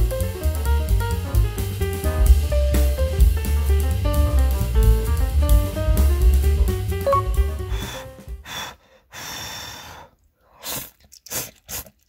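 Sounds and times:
person blowing and slurping noodles: 7.7 - 12.0.

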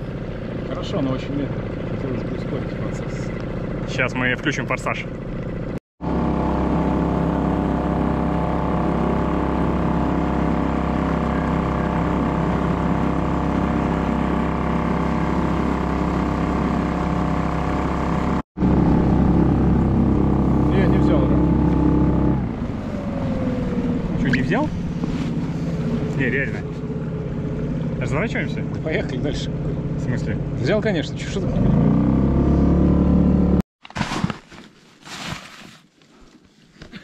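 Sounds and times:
outboard motor running at high pitch: 0.0 - 33.6.

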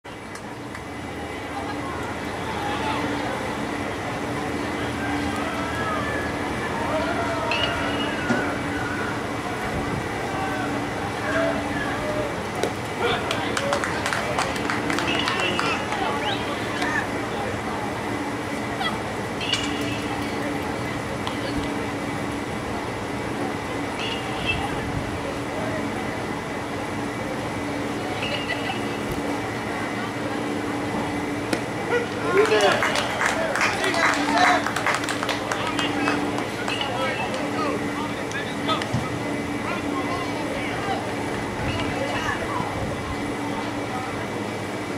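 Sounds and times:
constant low hum: 0.0 - 44.9
crowd chattering and calling out: 0.0 - 44.9
faint distant voices: 0.1 - 44.9
sharp claps: 12.6 - 16.1, 32.4 - 37.5.

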